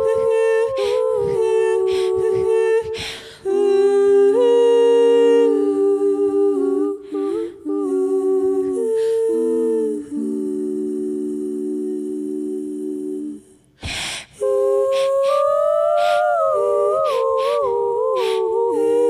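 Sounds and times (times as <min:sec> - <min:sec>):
women singing in harmony: 0:00.0 - 0:19.0.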